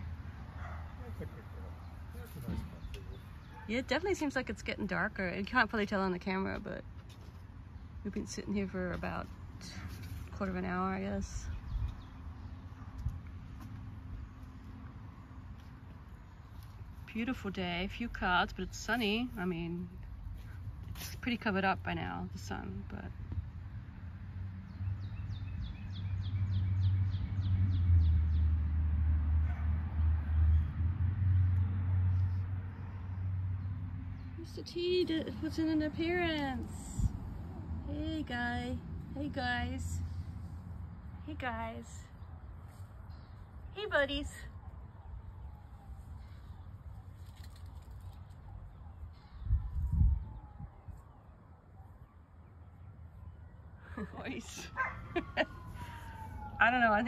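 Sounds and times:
wind buffeting microphone: 0:48.8 - 0:51.2.

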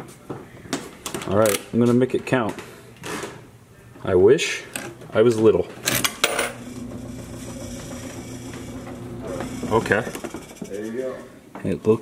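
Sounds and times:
steady low hum: 0:06.3 - 0:11.6.

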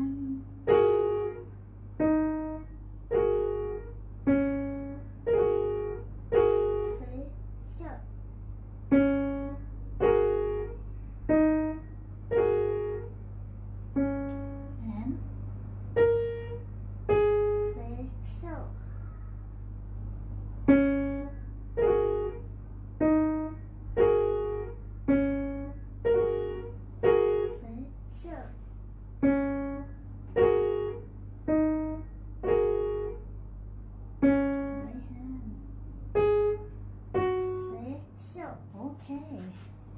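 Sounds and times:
upright piano played slowly: 0:00.0 - 0:07.6, 0:08.7 - 0:28.0, 0:28.9 - 0:38.1.

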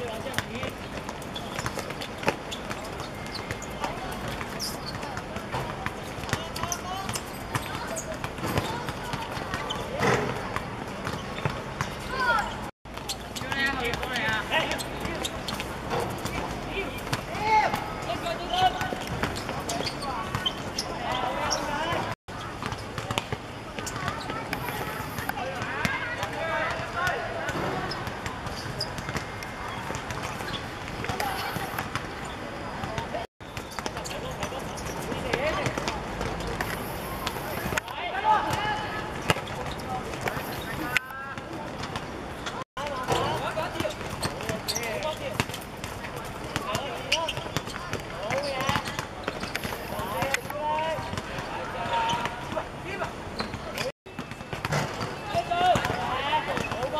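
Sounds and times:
players' voices: 0:00.0 - 0:56.9.

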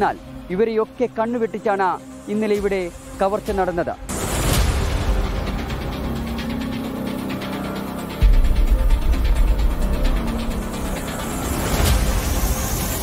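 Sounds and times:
dramatic background music: 0:00.0 - 0:13.0.

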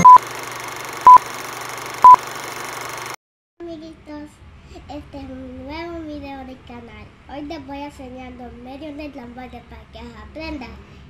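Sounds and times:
short electronic beeps: 0:00.0 - 0:00.2.

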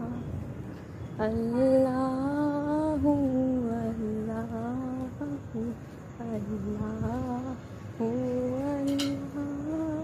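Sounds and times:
person chanting devotional melody: 0:00.0 - 0:10.0.

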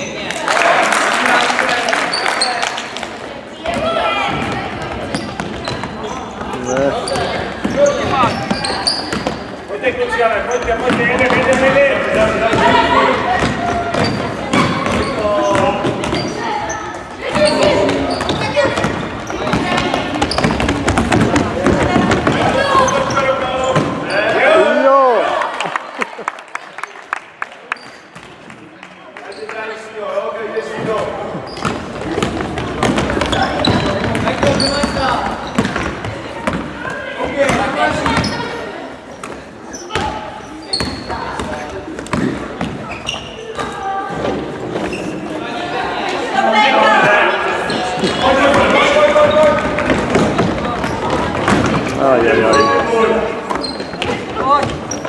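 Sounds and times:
basketball bouncing on wooden floor: 0:18.2 - 0:23.1, 0:31.5 - 0:36.6.

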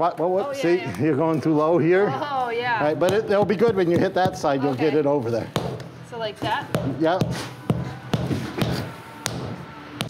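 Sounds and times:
rubber mallet knocking flagstone: 0:06.7 - 0:09.5.

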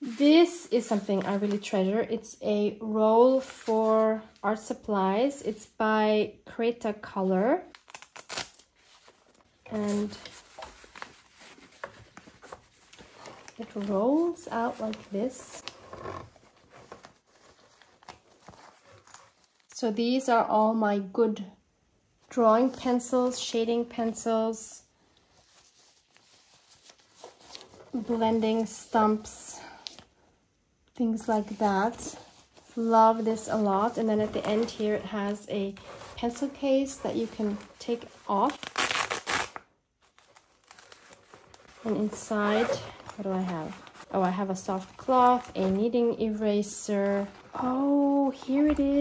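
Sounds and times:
fabric roll unrolling: 0:07.9 - 0:19.8, 0:31.2 - 0:49.0.

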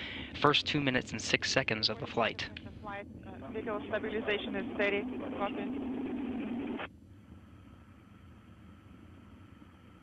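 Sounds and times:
radio voice transmission: 0:00.0 - 0:02.8, 0:03.4 - 0:05.8
faint low rumble: 0:00.0 - 0:10.0
radio channel hiss: 0:03.4 - 0:06.9.

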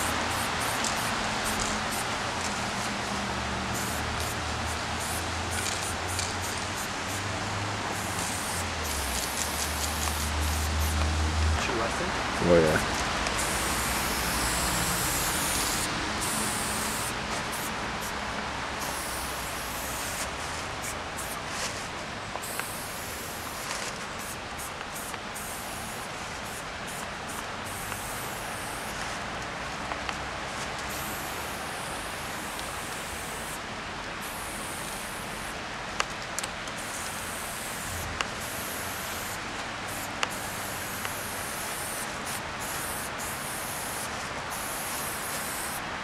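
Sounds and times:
aerosol spray can hissing: 0:00.0 - 0:02.9, 0:03.7 - 0:07.2, 0:07.9 - 0:11.0, 0:13.3 - 0:18.2, 0:18.8 - 0:21.4, 0:22.4 - 0:29.0, 0:30.9 - 0:33.6, 0:34.2 - 0:35.5, 0:36.8 - 0:45.8
steady background noise: 0:00.0 - 0:46.0.

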